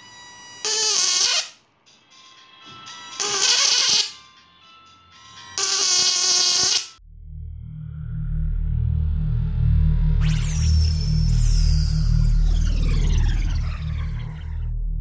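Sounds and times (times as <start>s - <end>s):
high-voltage arcing buzz: 0.0s - 1.6s, 5.6s - 7.0s
bass-heavy electronic music: 7.0s - 15.0s.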